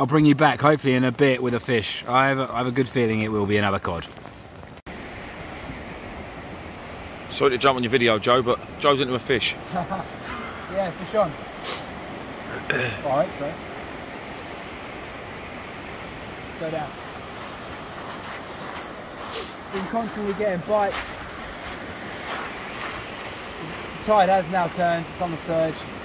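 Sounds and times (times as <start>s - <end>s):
surf breaking on beach: 4.6s - 26.0s.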